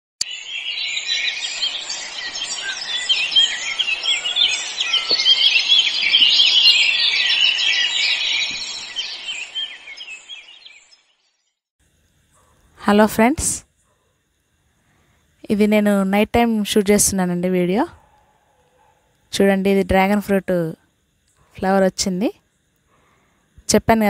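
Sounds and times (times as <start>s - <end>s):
flock of birds chirping: 0.2s - 11.4s.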